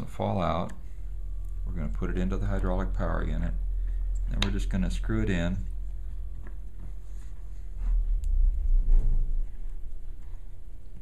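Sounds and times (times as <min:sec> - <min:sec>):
low rumble: 0:00.8 - 0:11.0.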